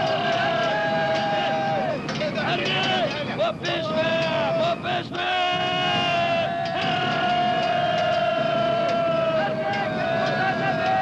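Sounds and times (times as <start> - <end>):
dense crowd-like din: 0.0 - 11.0.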